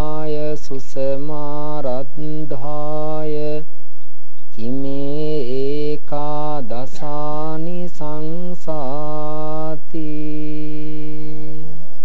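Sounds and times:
man chanting: 0.0 - 3.7, 4.5 - 11.8.

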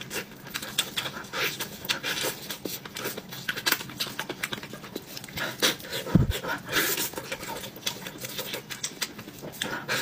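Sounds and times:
chewing and lip smacking: 0.0 - 10.0.

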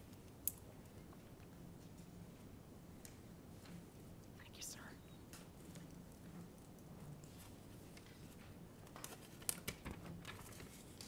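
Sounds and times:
faint rustles and clicks: 0.0 - 11.0.

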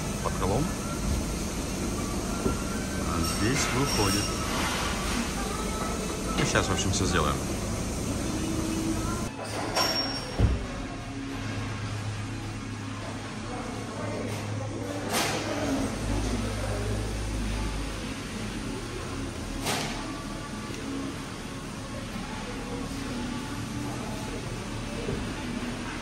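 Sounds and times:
steady low hum: 4.3 - 9.3.

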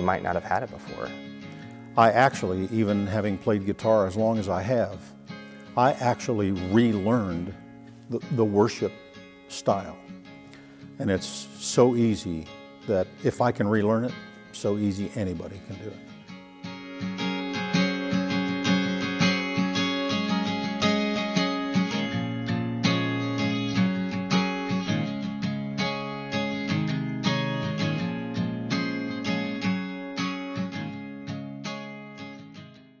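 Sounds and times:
acoustic guitar strumming: 0.0 - 33.0.

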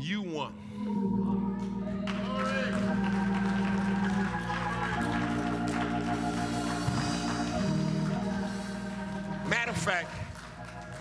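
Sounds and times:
organ playing held chords: 0.0 - 11.0
person preaching: 9.4 - 10.3.

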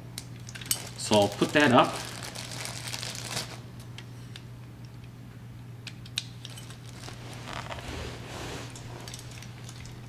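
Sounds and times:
small clicks and rustling: 8.7 - 10.0.

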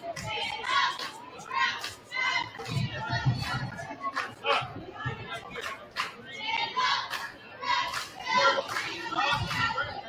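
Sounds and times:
spectators chatting: 0.0 - 10.0.

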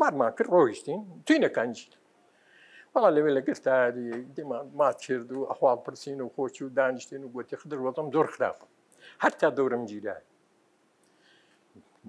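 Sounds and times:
elderly man talking: 0.0 - 2.0, 2.9 - 10.3.

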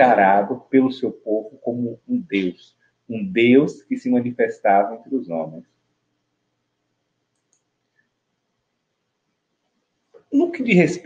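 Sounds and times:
faint clicks: 7.3 - 8.1.

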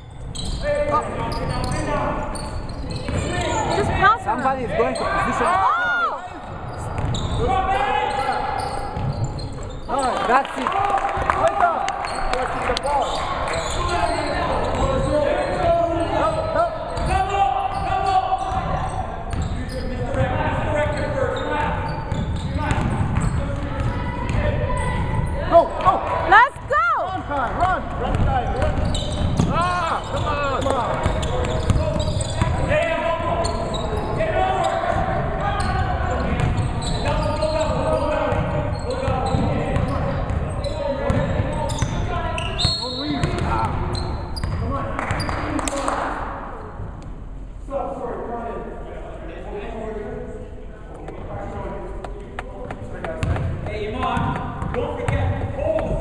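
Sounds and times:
gliding shoe squeal: 0.0 - 3.9, 4.9 - 10.2, 12.0 - 25.5, 28.6 - 45.5
echoing indistinct voices: 0.0 - 56.0.

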